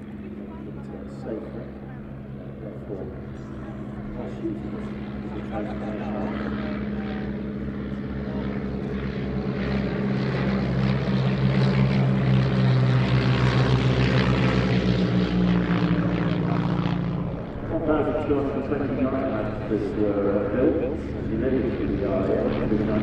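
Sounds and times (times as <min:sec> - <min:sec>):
propeller aircraft droning: 0:00.0 - 0:23.0.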